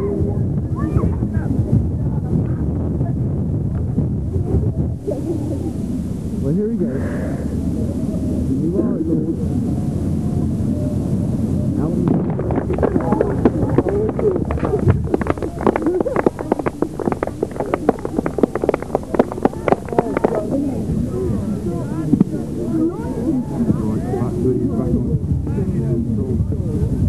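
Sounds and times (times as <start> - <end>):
murmur of voices: 0.0 - 27.0
spectators clapping: 12.1 - 20.9.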